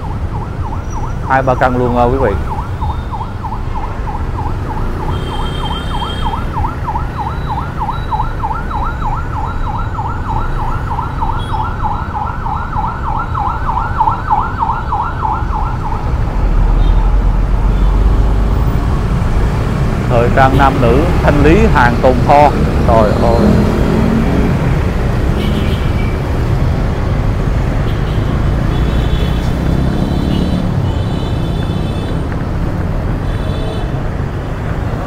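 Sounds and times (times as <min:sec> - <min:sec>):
emergency siren yelping: 0:00.0 - 0:16.2
low traffic rumble: 0:00.0 - 0:35.0.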